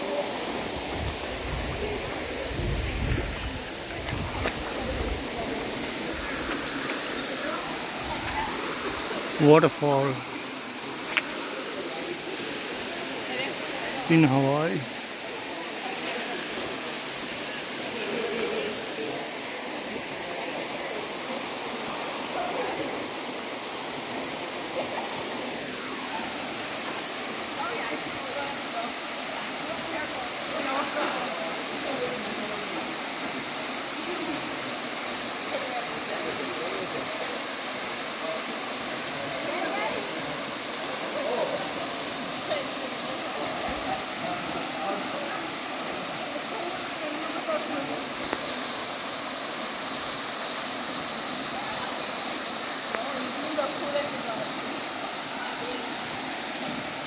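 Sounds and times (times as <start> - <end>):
waterfall rushing: 0.0 - 57.0.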